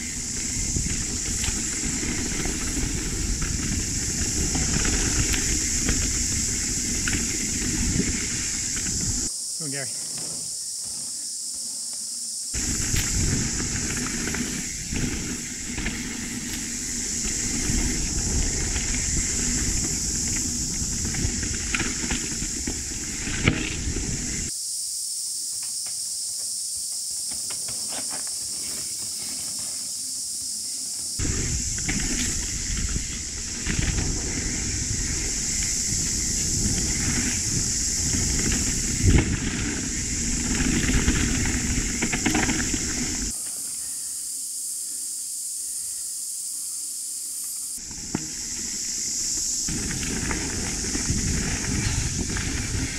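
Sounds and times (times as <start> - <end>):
wind rumble on microphone: 0.0 - 9.3, 12.6 - 24.5, 31.2 - 43.3, 49.4 - 52.9
high-pitched hiss: 0.0 - 52.9.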